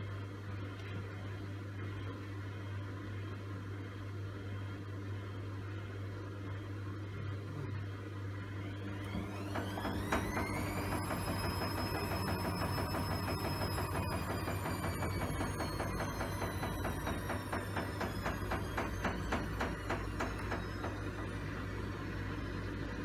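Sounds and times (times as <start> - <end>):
washing machine low hum: 0.0 - 23.0
drum motor whine: 6.5 - 23.0.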